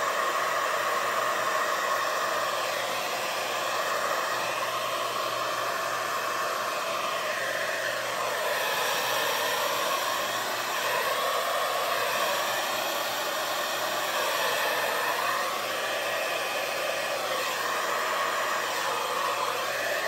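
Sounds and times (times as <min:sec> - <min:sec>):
hair dryer blowing air: 0:00.0 - 0:20.0.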